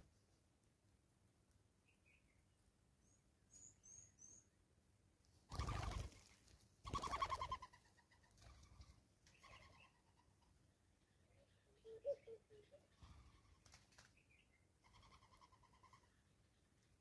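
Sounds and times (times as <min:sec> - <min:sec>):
high thin bird chirps: 0:03.0 - 0:04.5
dove cooing: 0:05.5 - 0:06.1, 0:06.9 - 0:07.8, 0:11.7 - 0:13.6, 0:14.8 - 0:16.0.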